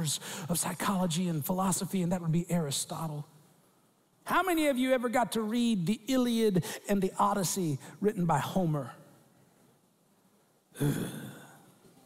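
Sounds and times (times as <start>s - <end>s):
man sighing: 10.8s - 11.6s.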